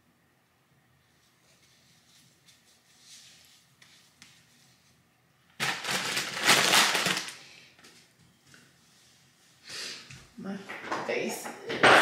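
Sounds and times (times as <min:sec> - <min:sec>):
rustling and crinkling packaging: 0:05.5 - 0:08.7.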